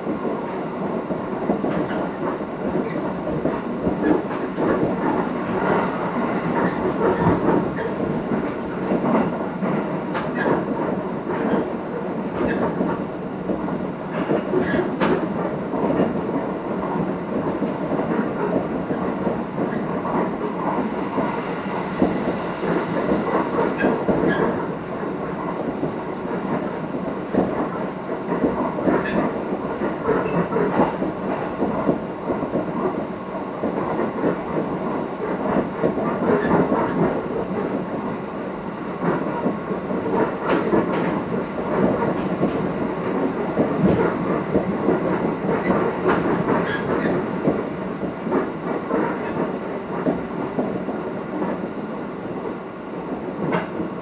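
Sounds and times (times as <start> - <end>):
train wheels rumbling on rails: 0.0 - 54.0
track clicks and knocks: 38.8 - 51.7.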